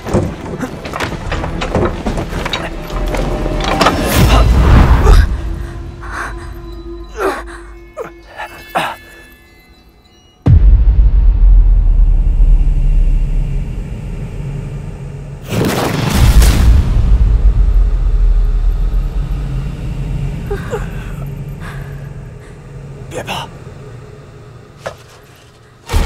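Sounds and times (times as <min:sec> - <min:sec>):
deep rumble: 0:10.5 - 0:24.8.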